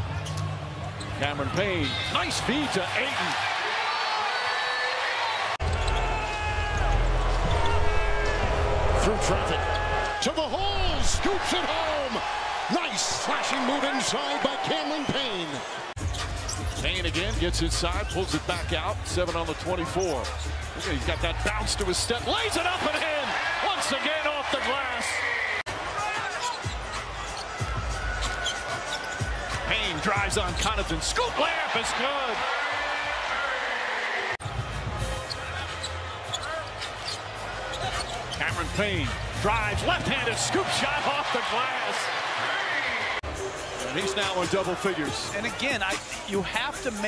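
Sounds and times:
arena noise: 0:00.0 - 0:47.0
sneakers squeaking on hardwood: 0:26.2 - 0:29.6, 0:35.2 - 0:38.5.

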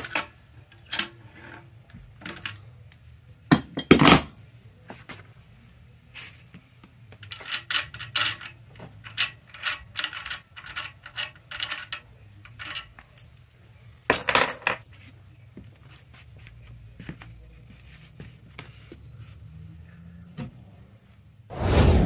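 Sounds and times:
wrench clinking on metal: 0:03.5 - 0:04.3, 0:07.2 - 0:13.4, 0:14.1 - 0:14.8
metal clicks and rattles: 0:07.2 - 0:13.4.

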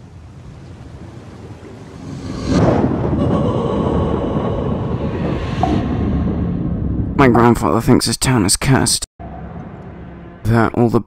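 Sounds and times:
loud sustained rumble: 0:01.0 - 0:07.4, 0:09.2 - 0:10.8.

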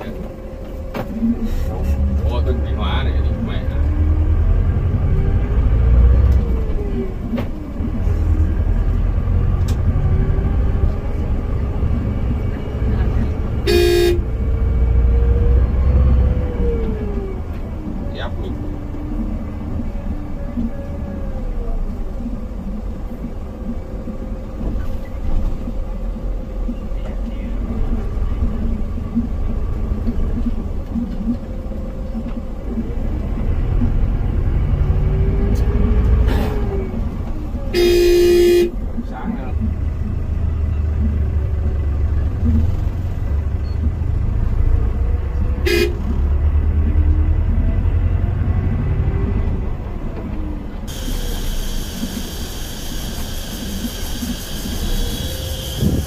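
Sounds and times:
bus engine rumble: 0:00.0 - 0:56.0
vehicle horn: 0:13.6 - 0:14.4, 0:37.7 - 0:38.8, 0:45.6 - 0:46.1, 0:55.2 - 0:56.0.

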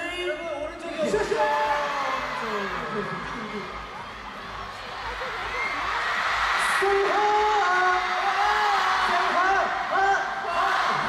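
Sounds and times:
audience noise: 0:00.0 - 0:11.0.

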